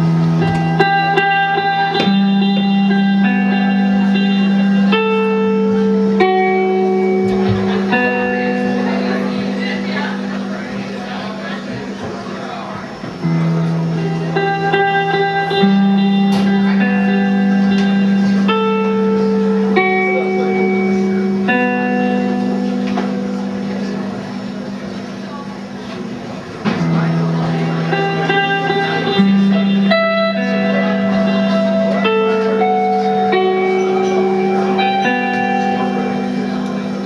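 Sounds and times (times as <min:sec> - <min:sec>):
low droning bass note: 0:00.0 - 0:12.4, 0:26.7 - 0:37.0
electric guitars sustained notes: 0:00.0 - 0:37.0.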